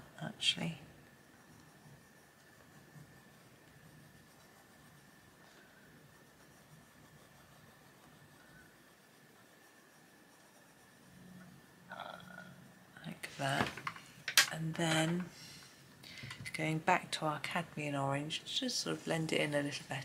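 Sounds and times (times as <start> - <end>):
pencil shading on paper: 0.6 - 11.9
faint steady high tone: 8.1 - 8.8.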